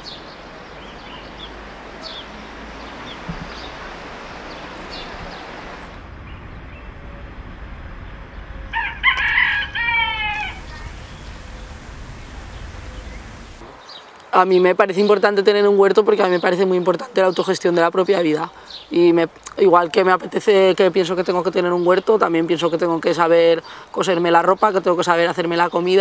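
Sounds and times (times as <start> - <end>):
outdoor rush: 0.0 - 14.0
small birds chirping: 0.0 - 26.0
rooster crowing: 8.6 - 13.6.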